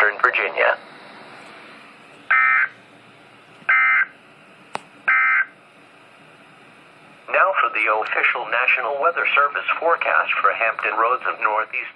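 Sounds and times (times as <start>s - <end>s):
radio hiss: 0.0s - 11.9s.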